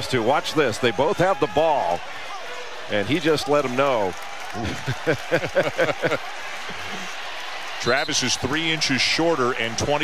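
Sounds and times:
arena crowd noise: 0.0 - 10.0
man laughing: 4.6 - 6.2.

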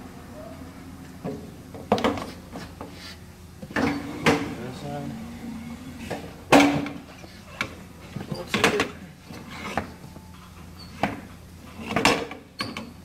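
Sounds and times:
steady low hum: 0.0 - 8.3.

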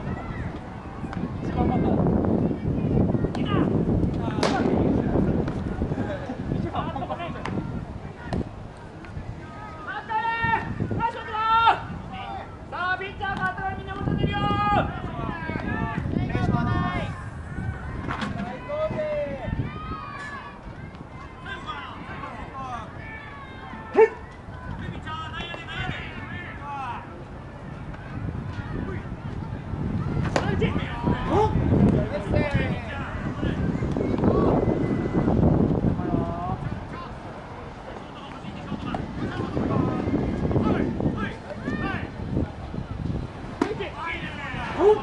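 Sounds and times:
faint voices calling: 0.0 - 45.0
baseball impact knocks: 4.1 - 4.8, 30.2 - 30.6, 43.6 - 43.8
players shouting: 9.3 - 35.4, 36.0 - 45.0.

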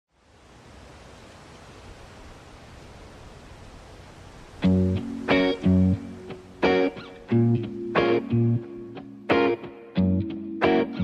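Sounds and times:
steady hiss: 0.1 - 9.9.

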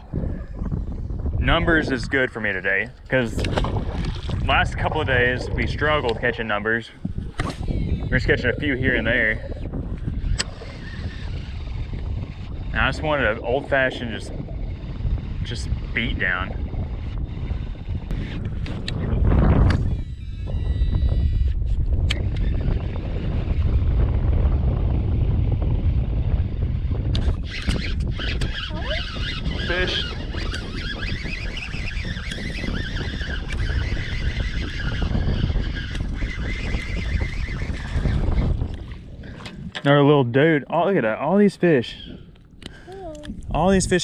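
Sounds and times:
wind rumbling on microphone: 0.0 - 44.0
water splashing: 3.3 - 9.7
fishing reel cranking: 7.4 - 13.3, 27.1 - 38.8.

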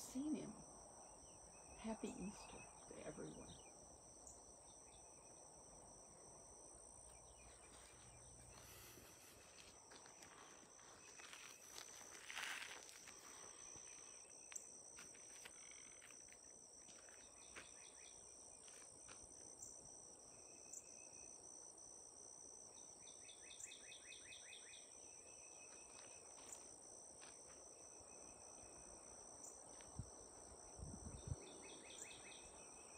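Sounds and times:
high-pitched insect drone: 7.1 - 21.4.

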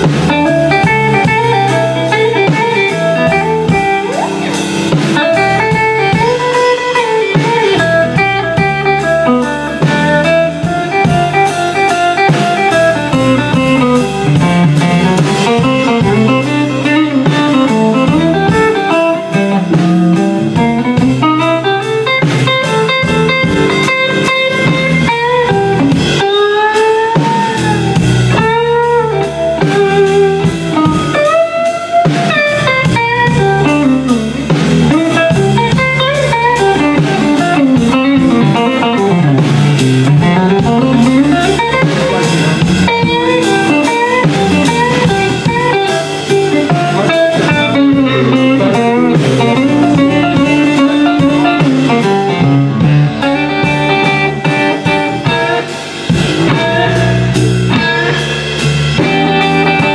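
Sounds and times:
bass guitar: 0.0 - 59.9
drums: 0.0 - 59.9
electric guitar solo: 0.0 - 59.9.

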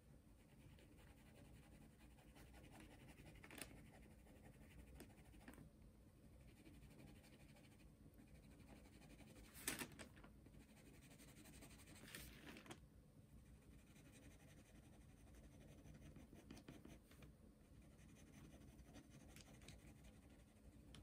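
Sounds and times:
pencil scratching on paper: 0.4 - 5.5, 6.4 - 9.5, 10.6 - 12.3, 13.4 - 17.1, 17.8 - 20.8.

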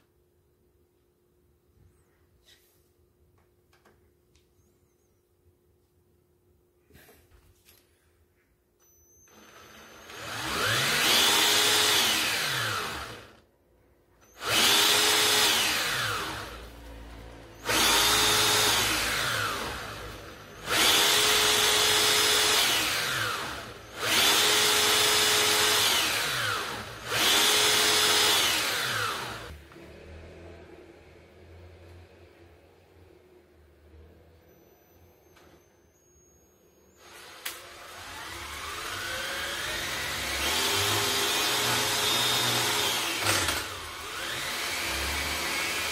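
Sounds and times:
cordless drill motor whining: 8.8 - 13.4, 14.2 - 29.6, 35.2 - 45.9.

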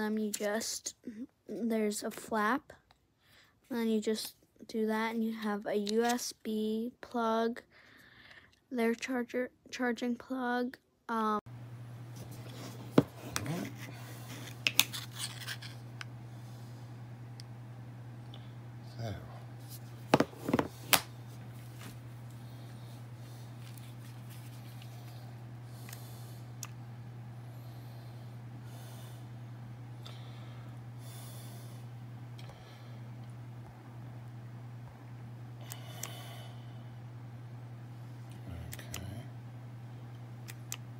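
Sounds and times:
steady low hum: 11.4 - 40.9.

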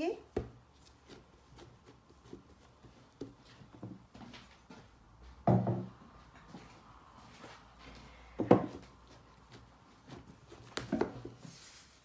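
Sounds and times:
dull thumps on wooden board: 5.4 - 5.9, 8.4 - 8.9.

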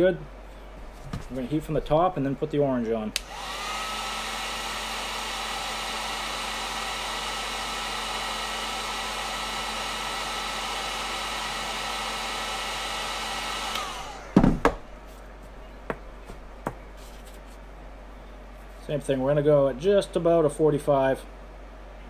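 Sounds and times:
heat gun fan whine: 0.0 - 21.8.

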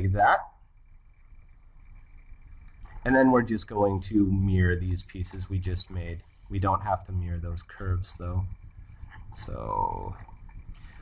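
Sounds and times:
faint steady hiss: 0.0 - 11.0
faint clicks: 1.8 - 3.1, 7.8 - 11.0.

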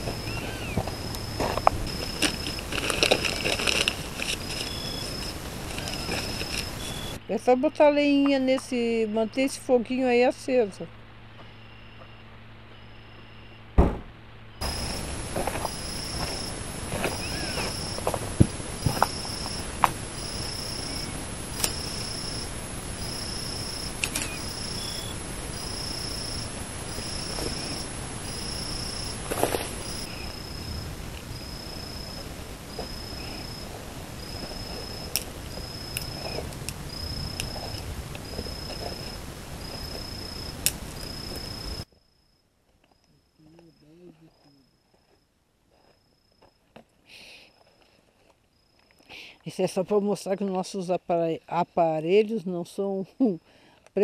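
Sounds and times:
insects chirping: 0.0 - 53.8
sharp knock: 13.8 - 14.2
short clicks: 24.0 - 24.5.

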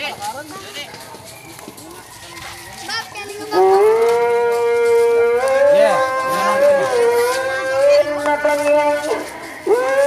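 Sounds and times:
low crowd voices: 0.0 - 10.0.

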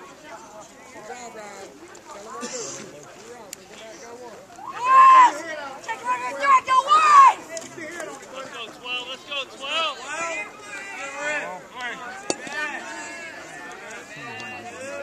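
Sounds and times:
overlapping chatter of voices: 0.0 - 15.0.

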